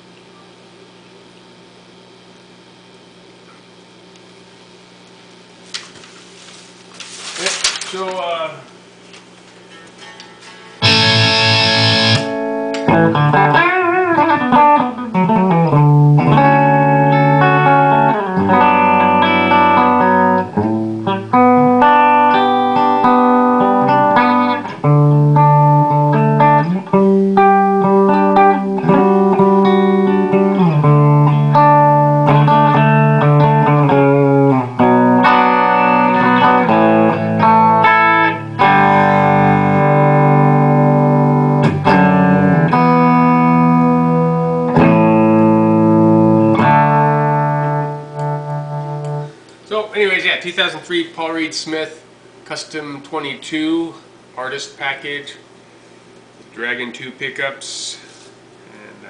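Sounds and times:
electric guitar notes and chords: 10.8s - 49.6s.

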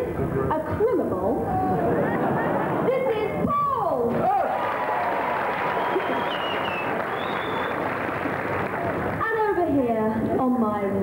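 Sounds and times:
audience applauding and cheering: 4.1s - 9.4s
high whistle from crowd: 5.7s - 7.9s.

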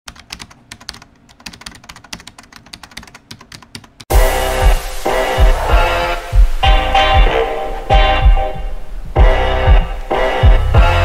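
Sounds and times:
computer keyboard typing: 0.1s - 4.1s.

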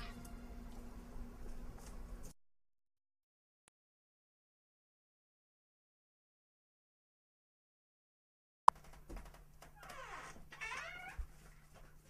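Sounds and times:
faint high cries: 0.0s - 0.7s.

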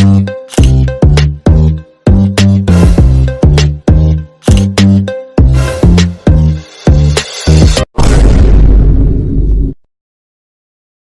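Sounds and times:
explosion boom: 8.0s - 9.9s.

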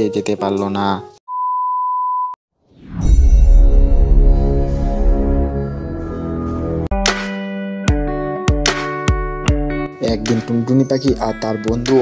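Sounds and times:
background music: 0.0s - 1.2s, 4.0s - 12.0s
electronic beep: 1.3s - 2.4s.

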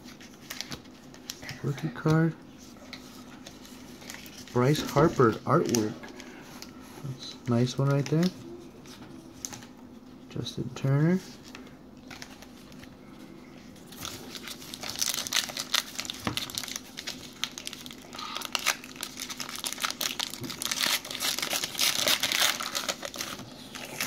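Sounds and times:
card pack wrapper crinkling: 3.4s - 6.3s, 13.9s - 24.0s.

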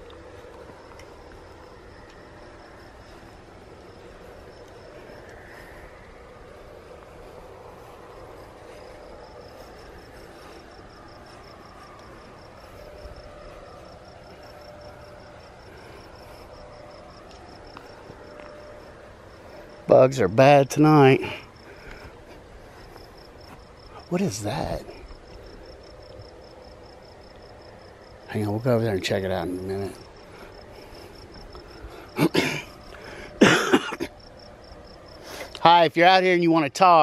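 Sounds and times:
crickets chirping: 0.0s - 37.0s
faint outdoor hum: 0.0s - 37.0s.

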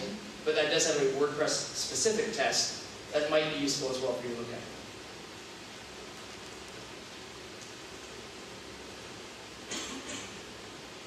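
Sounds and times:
low room tone hiss: 0.0s - 11.0s.

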